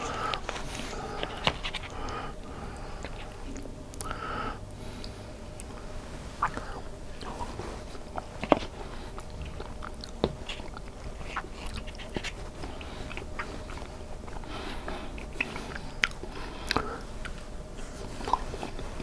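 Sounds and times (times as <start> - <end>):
man chewing food: 0.0 - 19.0.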